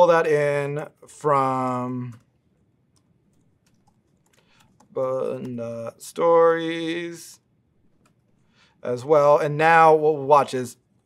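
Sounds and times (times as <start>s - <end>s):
laptop keyboard typing: 3.0s - 5.6s.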